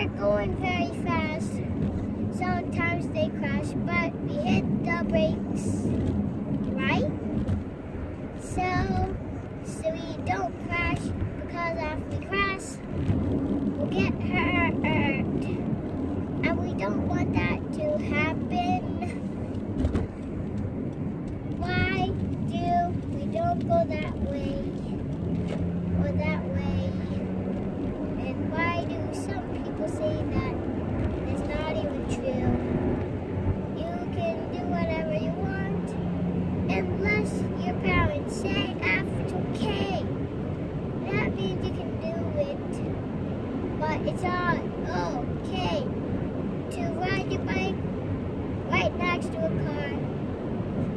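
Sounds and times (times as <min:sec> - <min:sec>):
young child singing: 0:00.0 - 0:01.6, 0:02.3 - 0:05.9, 0:08.4 - 0:12.8, 0:13.8 - 0:15.6, 0:16.4 - 0:19.2, 0:21.6 - 0:24.9, 0:26.0 - 0:27.2, 0:28.2 - 0:30.6, 0:31.3 - 0:32.6, 0:33.8 - 0:36.0, 0:36.7 - 0:40.1, 0:41.0 - 0:42.8, 0:43.8 - 0:45.9, 0:46.7 - 0:47.8, 0:48.7 - 0:50.0
steady low rumble: 0:00.0 - 0:50.9.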